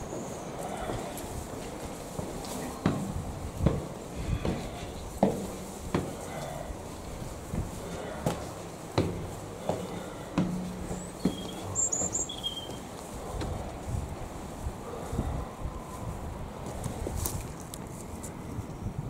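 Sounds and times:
footsteps on hard surface: 0.0 - 15.0, 16.6 - 17.6
low outdoor rumble: 0.0 - 18.4.

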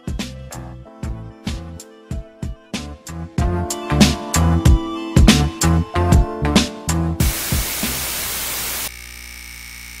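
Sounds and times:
white noise static hiss: 7.2 - 8.9.

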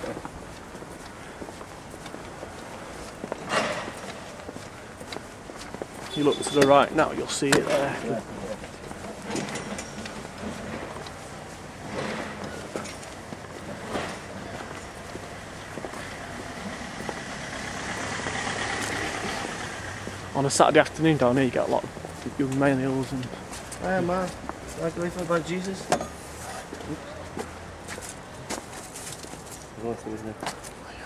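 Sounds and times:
footsteps on pavement: 0.0 - 31.0
outdoor background noise: 0.0 - 31.0
street background noise: 0.0 - 31.0.

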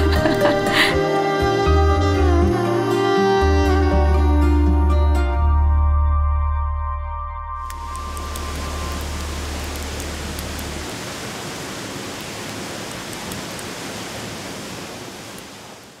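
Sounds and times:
low drone: 0.0 - 11.0
faint crackles: 7.6 - 14.0
steady rushing noise: 7.6 - 16.0.

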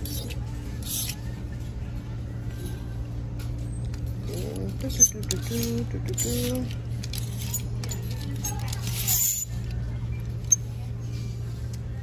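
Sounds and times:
steady low hum: 0.0 - 12.0
hangers clicking on clothing rack: 3.9 - 9.7.

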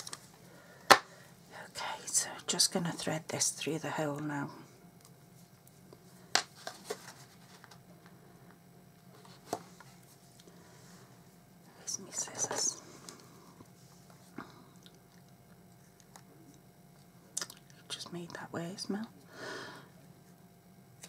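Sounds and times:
crackly rustle of card: 5.0 - 8.2.

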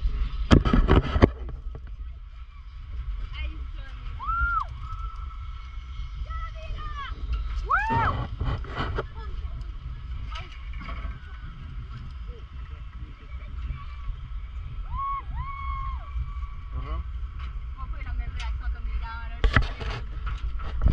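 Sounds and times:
wind buffeting microphone: 0.0 - 20.9
faint voices: 1.5 - 20.0.

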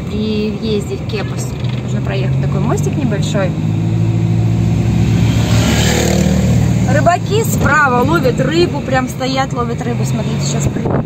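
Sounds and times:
car engine hum: 0.0 - 11.0
road noise rushing: 0.0 - 11.0.

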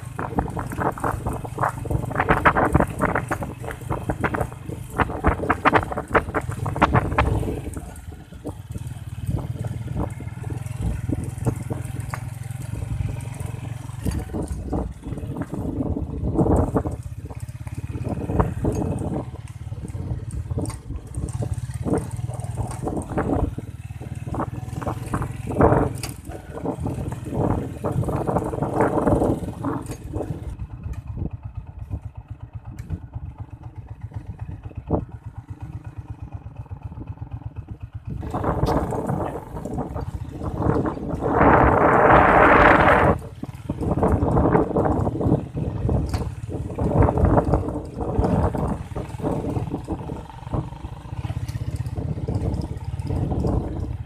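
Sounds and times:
motorcycle engine drone: 0.0 - 54.0
motorcycle rattling over bumps: 0.0 - 54.0.

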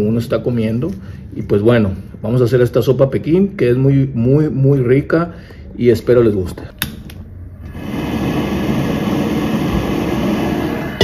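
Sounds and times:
gas burner flame roaring: 6.8 - 11.0.

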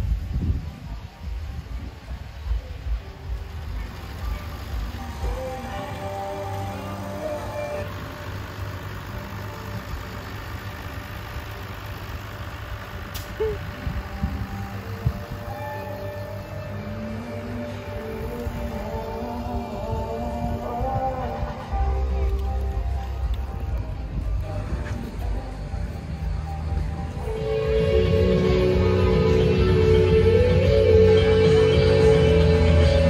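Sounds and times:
music playing: 0.0 - 33.0
tractor diesel engine running: 0.0 - 33.0.

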